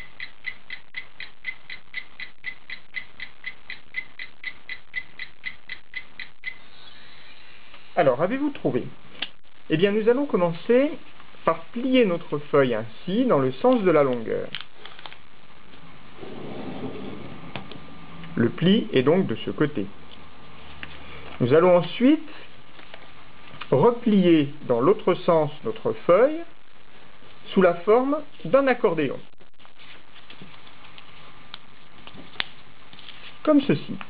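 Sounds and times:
low room noise: 0.0 - 34.0
paper rustling: 22.6 - 23.7, 29.6 - 34.0.

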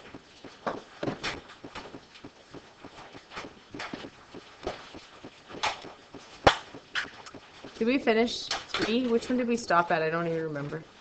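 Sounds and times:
woman's voice: 7.8 - 10.9.

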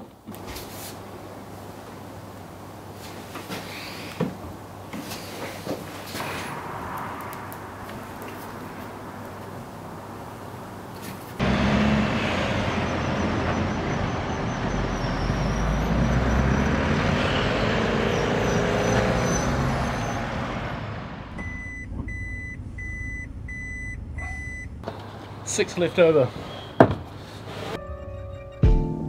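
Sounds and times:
vehicle engine rumbling: 4.4 - 28.6
reversing alarm beeps: 12.7 - 16.5, 21.4 - 24.7.

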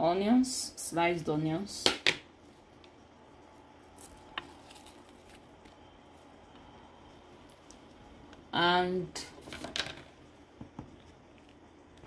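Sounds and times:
soft handling sounds: 2.4 - 8.4.

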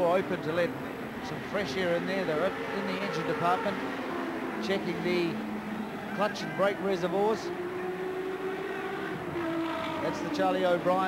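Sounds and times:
racing car engines droning: 0.0 - 11.0.

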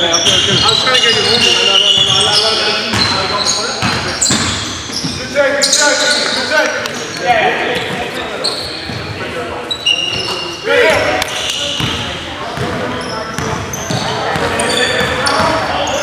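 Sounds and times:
players calling out: 0.0 - 16.0
sneakers squeaking: 0.0 - 16.0.

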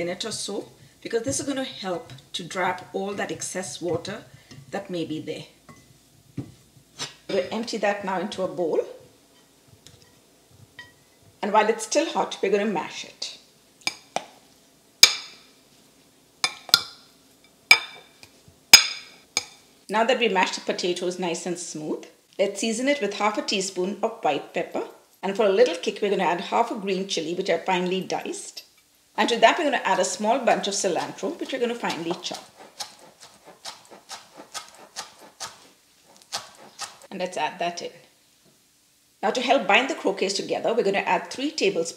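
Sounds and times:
knife chopping on plastic board: 31.8 - 35.6, 36.3 - 37.0.

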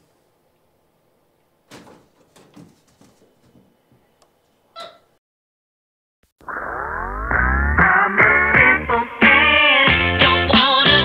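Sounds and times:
faint scuffling: 1.6 - 5.1
monkey chirping: 4.8 - 5.1.

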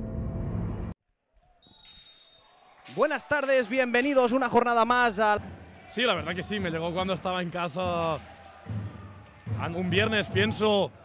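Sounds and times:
quiet arena ambience: 0.4 - 11.0
referee's whistle long note: 1.6 - 2.5.

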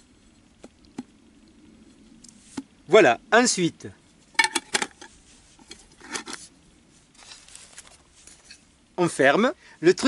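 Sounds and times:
lid scraping as turned: 4.4 - 6.4.

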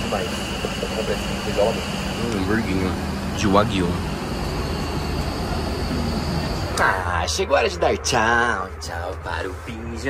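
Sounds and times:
airliner cabin drone: 0.0 - 10.0.

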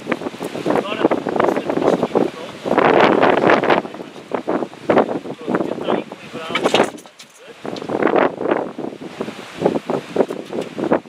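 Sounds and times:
wind on microphone: 0.0 - 11.0
people talking: 0.7 - 2.8, 3.4 - 4.3, 5.3 - 7.6.

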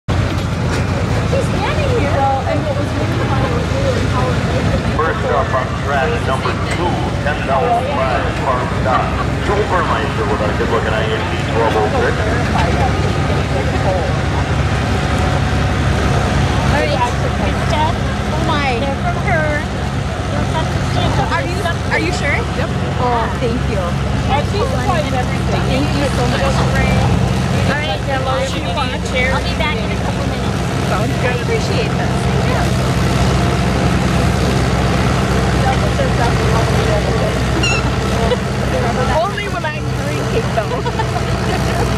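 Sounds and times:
tractor engine under load: 0.1 - 41.9
people talking: 0.3 - 41.9.

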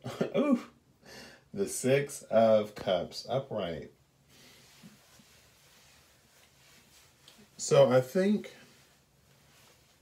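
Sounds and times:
faint hiss: 0.4 - 10.0.

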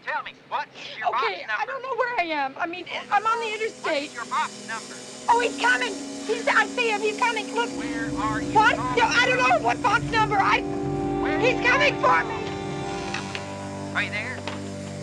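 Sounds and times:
woman speaking urgently: 1.0 - 4.3, 5.3 - 10.6, 11.2 - 12.4
deep rumbling drone: 2.8 - 15.0
suspense music note: 2.9 - 15.0.

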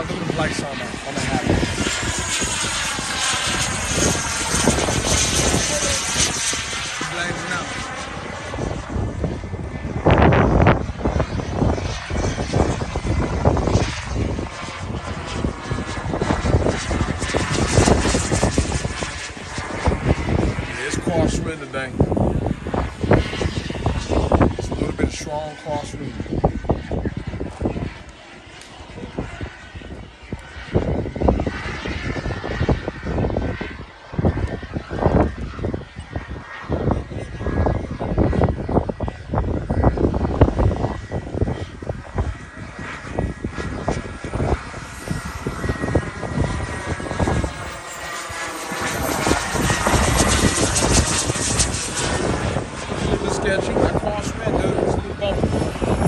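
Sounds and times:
model jet turbine whining: 0.0 - 56.0.

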